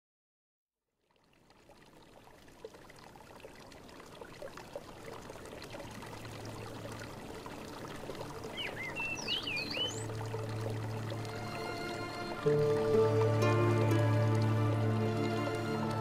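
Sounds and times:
running trickling water: 0.9 - 16.0
whistled chirps: 8.6 - 10.1
music: 9.9 - 16.0.

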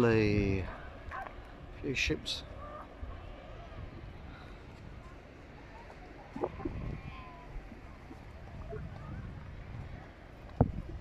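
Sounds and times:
faint distant voices: 0.0 - 10.9
wind rumbling on microphone: 0.0 - 11.0.

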